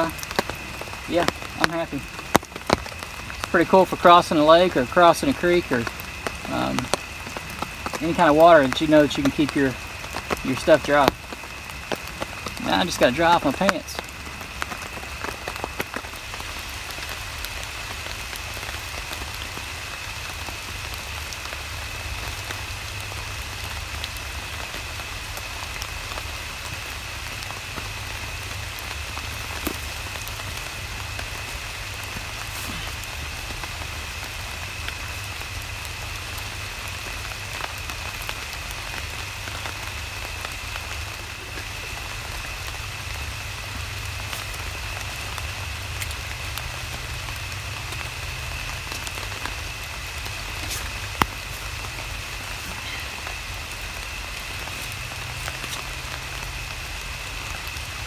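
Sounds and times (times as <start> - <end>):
rain pattering on a tarp: 0.0 - 58.0
sharp water drips: 0.0 - 58.0.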